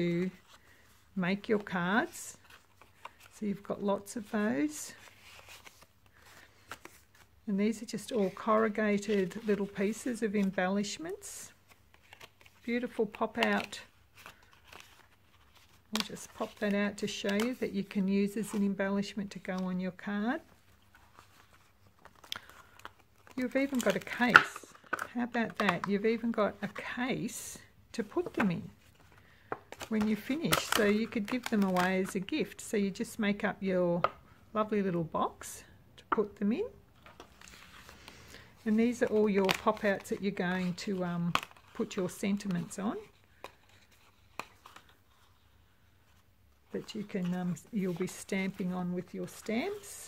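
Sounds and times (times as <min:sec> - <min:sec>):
card and plastic sheet rustling: 0:00.3 - 0:27.1, 0:28.0 - 0:32.6, 0:37.0 - 0:45.4.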